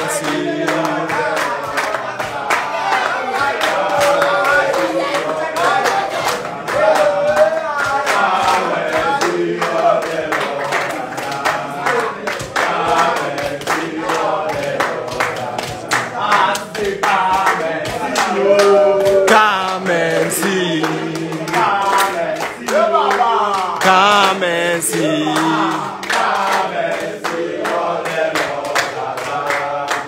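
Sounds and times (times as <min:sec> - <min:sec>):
hands clapping: 0:00.0 - 0:30.0
men singing together: 0:00.0 - 0:30.0.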